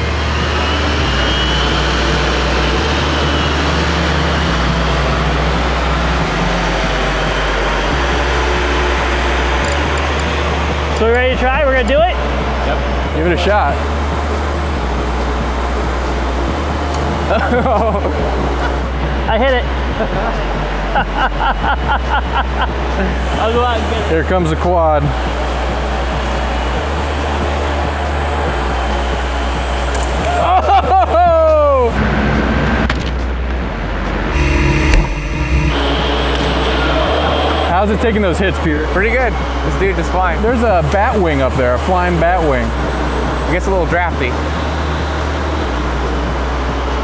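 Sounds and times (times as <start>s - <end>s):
rc aircraft motors whirring: 0.0s - 13.0s
propeller motors whirring: 0.0s - 32.0s, 33.0s - 47.0s
high propeller whine: 0.0s - 47.0s
low hum: 0.0s - 47.0s
person laughing: 17.3s - 18.4s, 20.0s - 23.2s, 30.3s - 31.9s.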